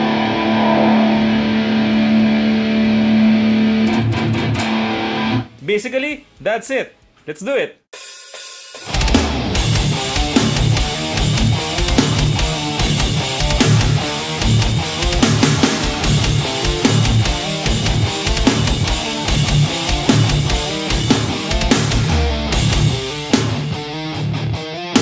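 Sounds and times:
distorted electric guitar riff: 0.0s - 5.6s, 8.8s - 25.0s.

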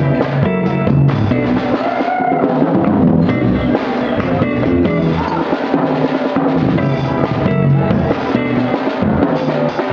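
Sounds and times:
bass line: 0.0s - 9.9s
drums: 0.0s - 9.9s
hollow-body guitar: 0.0s - 9.9s.

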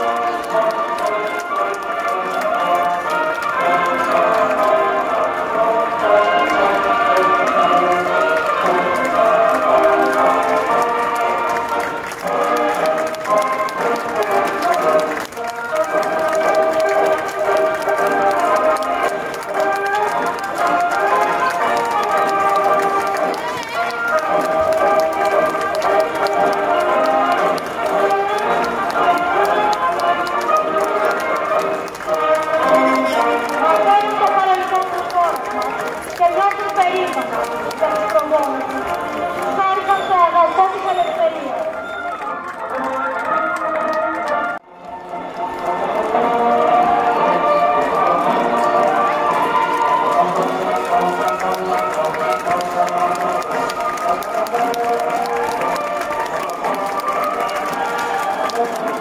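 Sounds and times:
parade music: 0.0s - 59.0s
voices of many people: 0.0s - 59.0s.

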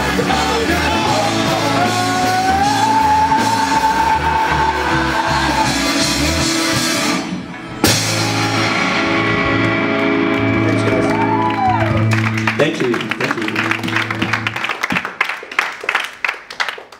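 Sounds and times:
rock band playing loud: 0.0s - 15.0s.

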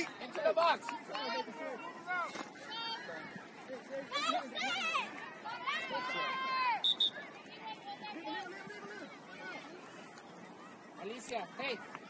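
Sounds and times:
distant voices of players and spectators: 0.0s - 12.0s.

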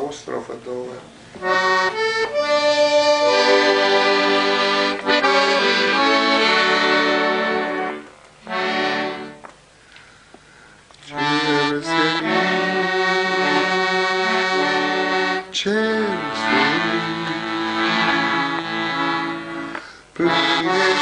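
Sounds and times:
accordion playing chords: 1.1s - 9.8s, 11.0s - 21.0s.

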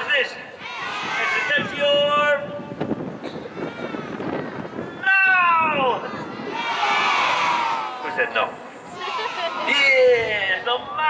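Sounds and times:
children shouting together: 0.6s - 1.8s, 3.4s - 4.5s, 6.2s - 8.0s, 8.9s - 9.9s.

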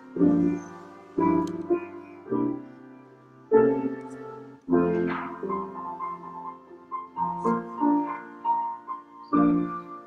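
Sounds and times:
slow piano piece: 0.0s - 10.0s.

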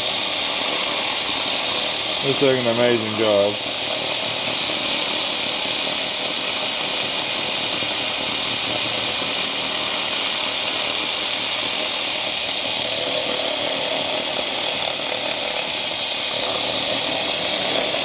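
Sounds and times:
fume extractor running: 0.0s - 18.0s
laser cleaner hissing: 0.0s - 18.0s.

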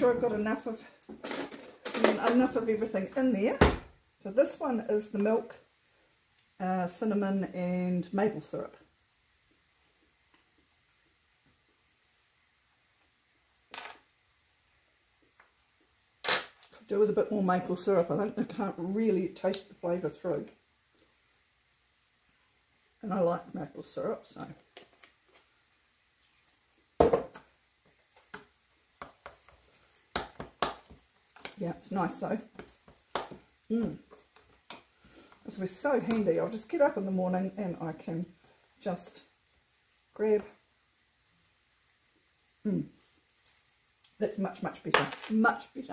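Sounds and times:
loud knock on counter: 27.0s - 27.3s.

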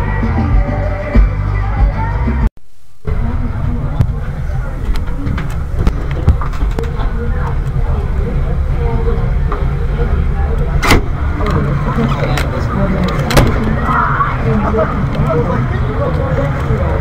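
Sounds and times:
muffled crowd chatter: 3.1s - 17.0s.

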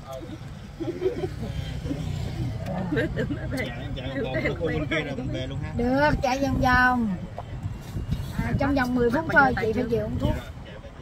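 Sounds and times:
tyre and road noise: 0.0s - 11.0s
voices: 0.0s - 11.0s
wind buffeting microphone: 0.6s - 11.0s.

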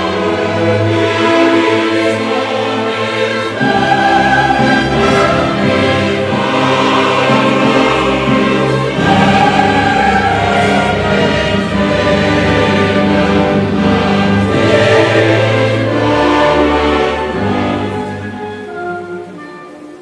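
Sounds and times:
choir singing with orchestra: 0.0s - 20.0s.

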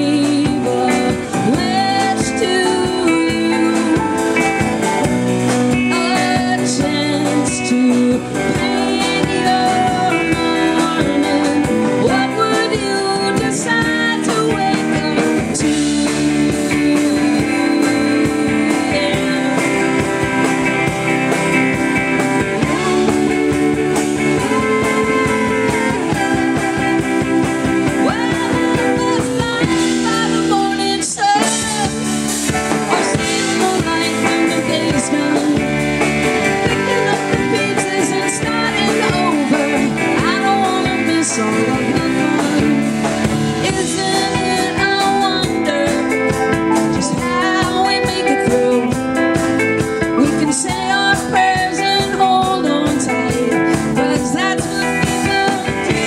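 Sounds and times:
live band playing: 0.0s - 56.0s.

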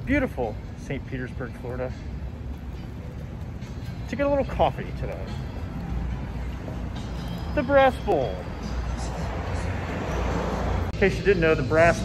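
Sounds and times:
street traffic rumble: 0.0s - 12.0s
vehicle passing: 4.6s - 12.0s.

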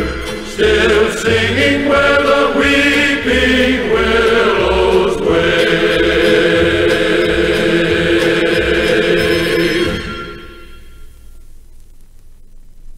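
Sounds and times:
chorus singing on vinyl record: 0.0s - 11.0s
record surface noise: 0.0s - 12.9s.

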